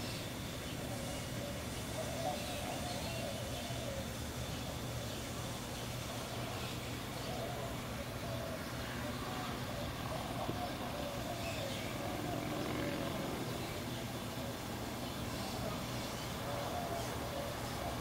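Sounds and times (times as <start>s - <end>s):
low background hum: 0.0s - 18.0s.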